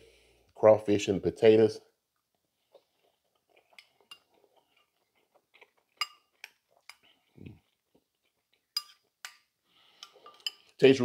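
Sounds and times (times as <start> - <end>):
spoon clinking against a bowl: 3.7 - 4.4, 6.0 - 7.0, 8.8 - 9.4, 10.0 - 10.8.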